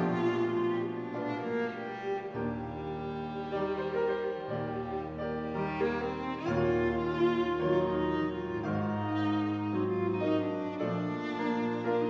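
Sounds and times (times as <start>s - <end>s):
low cello notes: 0.0s - 12.0s
piano: 0.0s - 12.0s
violin bowing: 0.0s - 12.0s.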